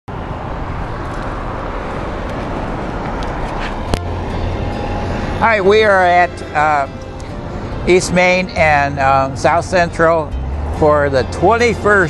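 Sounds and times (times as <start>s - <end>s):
road traffic rumble and hiss: 0.1s - 12.0s.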